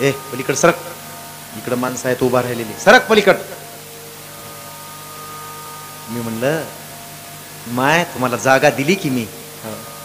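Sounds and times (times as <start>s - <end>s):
electrical hum and hiss: 0.0s - 10.0s.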